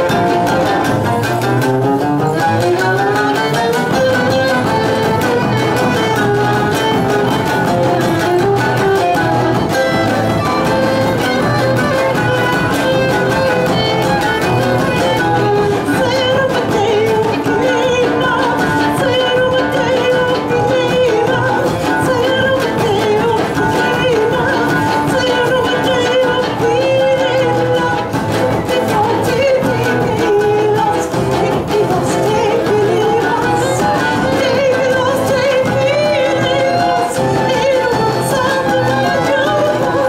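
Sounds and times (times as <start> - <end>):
fiddle melody: 0.0 - 40.0
oud: 0.0 - 40.0
strummed acoustic guitar: 0.0 - 40.0.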